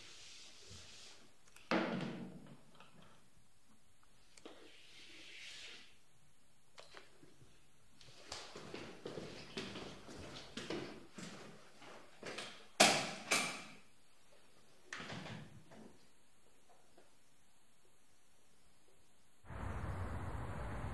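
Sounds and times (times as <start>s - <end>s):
chalk scratching on blackboard: 4.7s - 6.0s.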